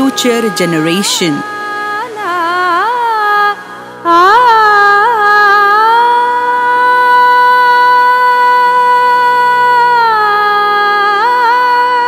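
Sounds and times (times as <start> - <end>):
tanpura drone: 0.0 - 12.0
woman singing a long note: 0.0 - 12.0.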